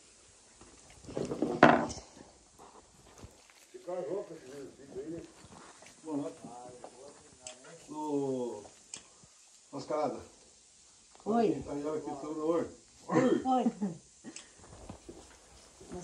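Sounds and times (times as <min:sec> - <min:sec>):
quiet indistinct talk: 0:03.7 - 0:10.4.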